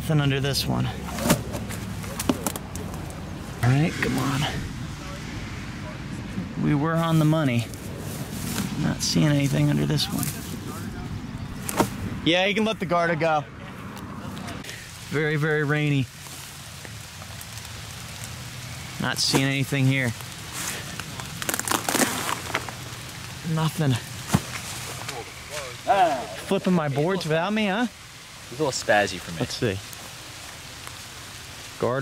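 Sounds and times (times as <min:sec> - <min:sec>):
rain on leafy undergrowth: 0:00.0 - 0:32.0.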